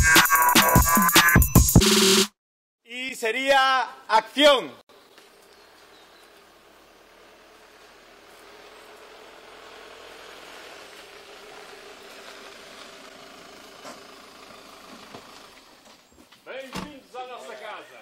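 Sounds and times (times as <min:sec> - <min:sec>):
car engine: 0:04.9 - 0:16.4
tyres on gravel: 0:04.9 - 0:18.0.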